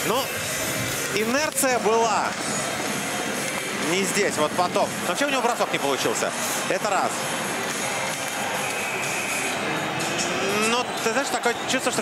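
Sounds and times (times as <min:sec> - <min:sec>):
arena crowd noise: 0:00.0 - 0:12.0
music playing: 0:00.0 - 0:12.0.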